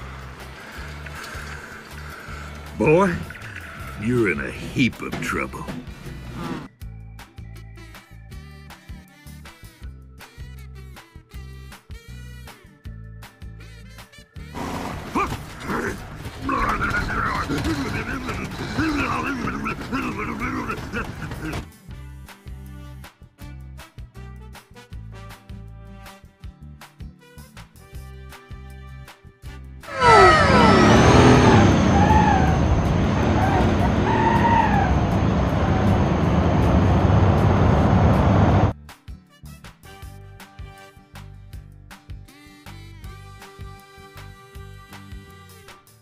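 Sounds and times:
truck engine rumble: 0.0 - 6.7, 14.6 - 21.6, 29.9 - 38.7
rising-and-falling calls: 29.9 - 36.0
falling glide of tones: 29.9 - 37.5.

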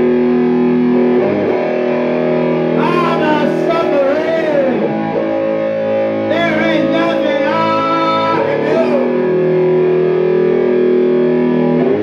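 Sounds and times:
distorted electric guitar blues: 0.0 - 12.0
man singing: 2.7 - 5.1, 6.3 - 9.3.

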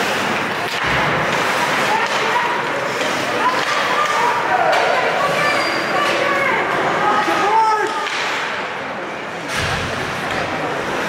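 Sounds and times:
skates and sticks on ice: 0.0 - 8.6
spectators' voices: 0.0 - 11.0.

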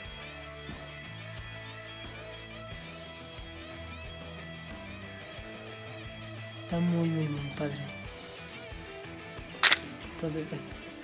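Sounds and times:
quiet background music: 5.2 - 8.6
plastic click: 9.6 - 9.8.

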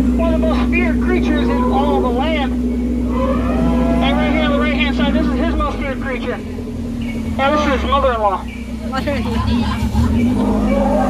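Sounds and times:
man talking: 0.0 - 2.7, 4.0 - 6.6, 7.3 - 8.5
boat motor drone: 0.0 - 11.0.

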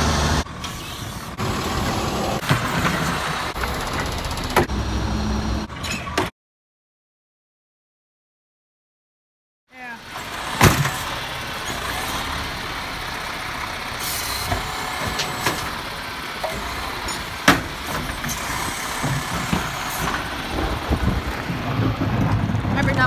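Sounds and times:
truck engine and hydraulics running: 0.0 - 6.3, 9.8 - 23.0
cart dumped with bang: 10.5 - 11.1.

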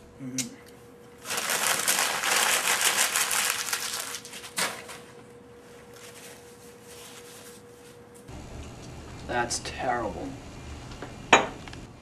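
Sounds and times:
paper wrapper crumpling: 1.2 - 4.6.

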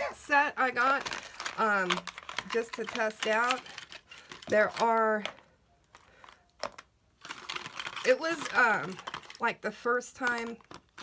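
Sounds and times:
plastic parts clicking: 0.8 - 9.4.

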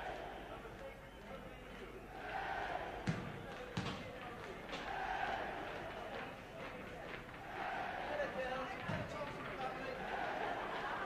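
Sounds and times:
hubbub of voices: 0.0 - 11.0
ball bouncing on hard floor: 3.0 - 4.1, 8.8 - 9.6.

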